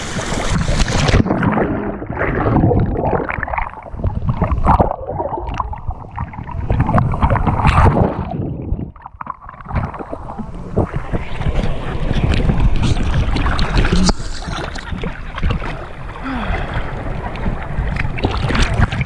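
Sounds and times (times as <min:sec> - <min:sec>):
muffled underwater sound: 0:00.0 - 0:19.0
seawater sloshing and splashing: 0:00.0 - 0:19.0.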